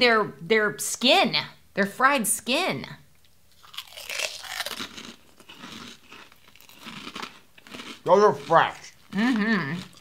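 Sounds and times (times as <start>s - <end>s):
crunching and chewing pork rinds: 3.5s - 10.0s.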